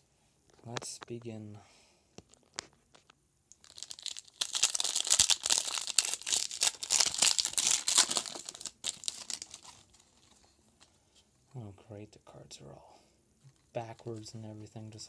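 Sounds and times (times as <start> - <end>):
wrapper crinkling: 2.4 - 10.5.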